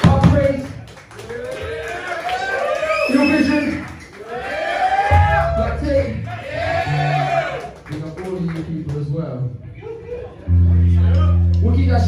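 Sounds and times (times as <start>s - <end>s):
low electric bass guitar note: 10.5s - 12.0s.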